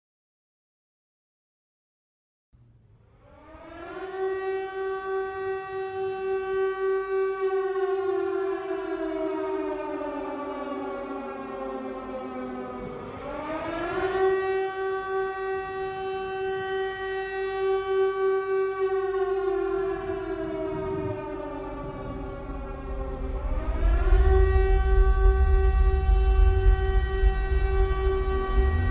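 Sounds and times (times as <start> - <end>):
siren wailing: 3.3 - 28.9.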